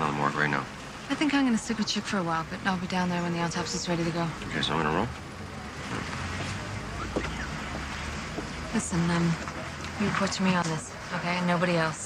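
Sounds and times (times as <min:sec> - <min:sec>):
distant road traffic rumble: 0:00.0 - 0:12.0.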